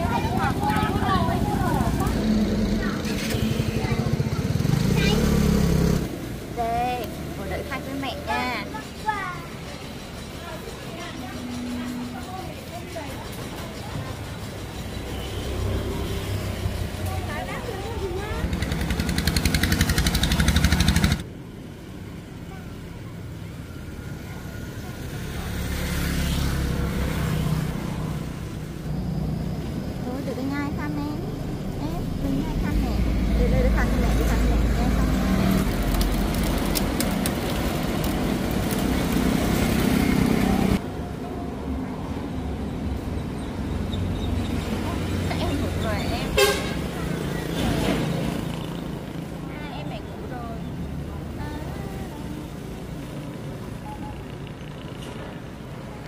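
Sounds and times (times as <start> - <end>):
people's voices: 0.0 - 20.7, 29.7 - 39.3, 44.5 - 54.9
vehicles passing: 0.0 - 56.0.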